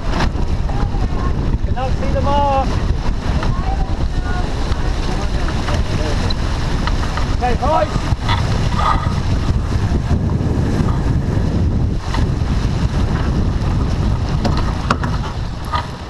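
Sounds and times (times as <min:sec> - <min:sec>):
heavy wind noise on microphone: 0:00.0 - 0:16.0.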